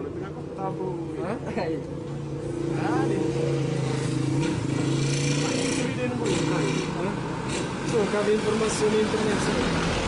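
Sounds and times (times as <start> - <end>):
rushing noise of passing vehicle: 1.9 - 10.0.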